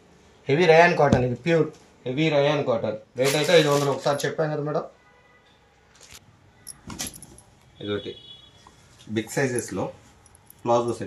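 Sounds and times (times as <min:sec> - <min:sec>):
plastic packaging crinkling: 0:03.3 - 0:04.3.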